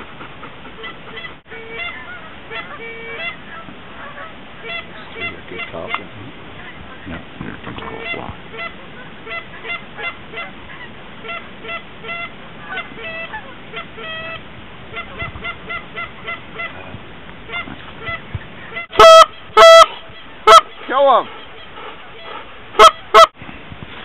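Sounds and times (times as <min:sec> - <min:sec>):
geese honking: 0:00.0 - 0:16.8, 0:17.5 - 0:23.4
loud close goose honks: 0:00.8 - 0:16.9, 0:17.5 - 0:23.4.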